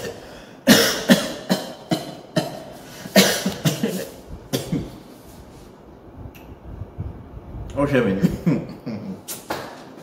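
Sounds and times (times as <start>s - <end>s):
man coughing: 0.0s - 5.0s, 8.2s - 9.3s.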